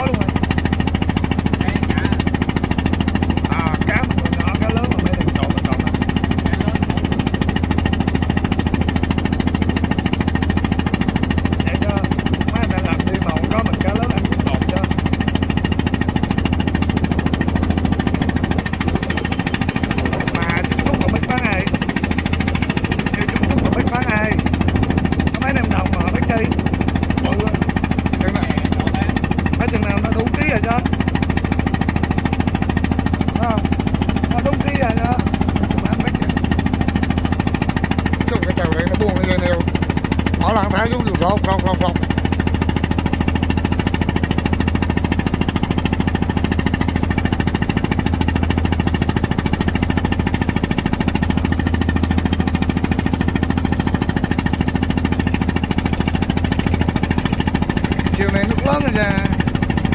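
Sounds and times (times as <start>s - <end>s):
boat engine droning: 0.0s - 59.9s
faint voices: 18.7s - 21.8s.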